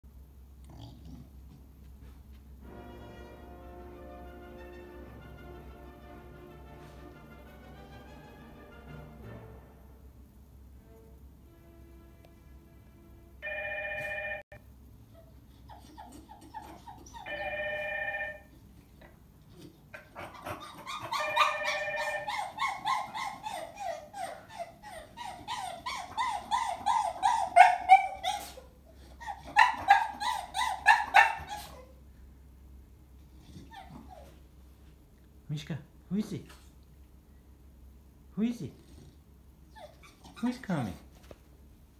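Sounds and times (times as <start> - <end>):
intercom chime ringing: 13.4 - 14.5, 17.3 - 18.5
dog yelping whines: 15.2 - 18.4, 20.0 - 32.0, 33.4 - 34.4, 39.7 - 40.9.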